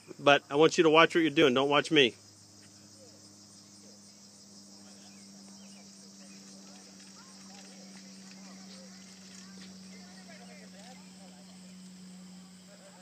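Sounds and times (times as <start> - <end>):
insects buzzing: 0.0 - 13.0
low steady hum: 0.0 - 13.0
faint chirps: 2.0 - 13.0.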